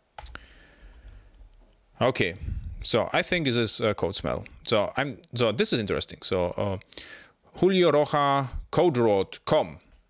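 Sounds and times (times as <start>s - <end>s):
faint room noise: 0.0s - 10.0s
computer clicks: 0.2s - 0.4s.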